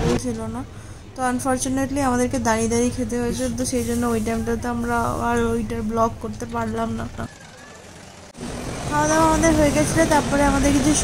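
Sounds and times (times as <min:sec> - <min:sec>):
crowded food court background noise: 0:01.2 - 0:06.3.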